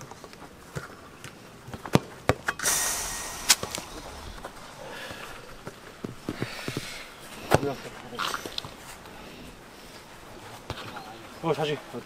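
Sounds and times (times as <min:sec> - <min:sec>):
high rushing noise: 0:02.6 - 0:06.3.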